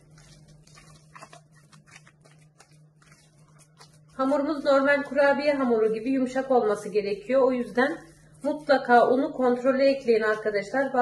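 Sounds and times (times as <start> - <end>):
low steady hum: 0.0 - 11.0
spatula squelching and scraping dough: 0.0 - 11.0.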